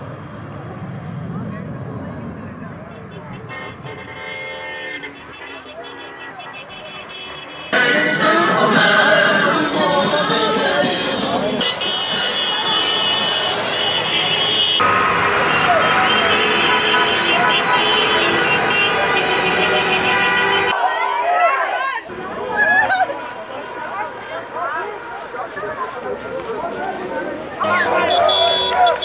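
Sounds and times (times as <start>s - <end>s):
car horns blasting: 3.0s - 7.9s, 10.9s - 20.8s, 27.8s - 29.0s
crowd shouting: 4.2s - 29.0s.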